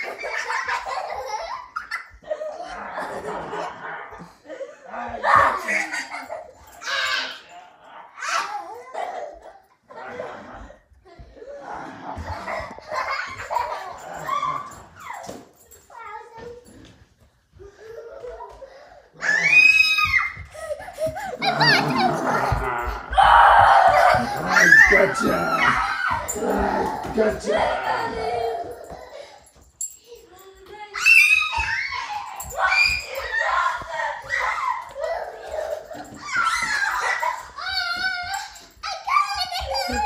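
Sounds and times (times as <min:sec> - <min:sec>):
young children laughing: 0:00.0 - 0:07.6, 0:08.4 - 0:15.4, 0:17.7 - 0:29.5, 0:31.0 - 0:40.0
child screaming: 0:19.2 - 0:20.5, 0:21.4 - 0:27.1, 0:31.0 - 0:35.6
child squealing: 0:19.2 - 0:20.5, 0:21.1 - 0:27.1.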